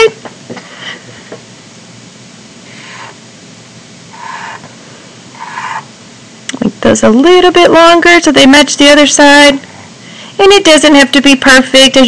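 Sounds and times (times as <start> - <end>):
marker drawing on paper: 2.7 - 3.2, 4.1 - 4.6, 5.4 - 5.9.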